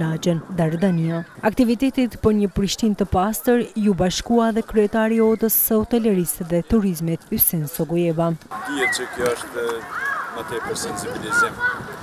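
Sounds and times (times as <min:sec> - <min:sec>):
man talking loudly: 0:08.6 - 0:09.8.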